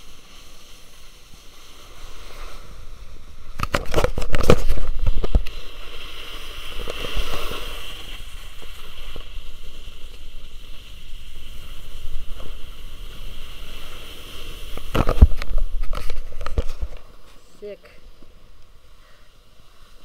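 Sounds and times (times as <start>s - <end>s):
skis scraping snow: 0.0s - 20.0s.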